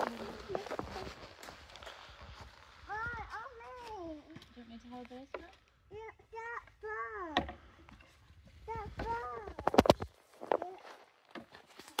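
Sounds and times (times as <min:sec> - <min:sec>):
child's high-pitched utterances: 0:02.8 - 0:04.4, 0:05.9 - 0:07.5, 0:08.6 - 0:09.8, 0:10.5 - 0:11.0.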